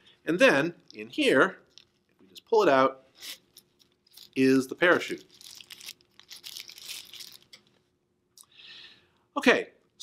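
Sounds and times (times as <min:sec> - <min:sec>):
parachute fabric crinkling: 0:05.0 - 0:07.5.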